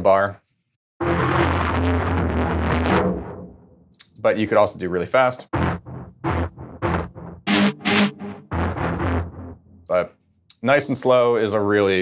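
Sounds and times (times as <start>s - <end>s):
stuttering pitched synth bursts: 5.6s - 9.6s.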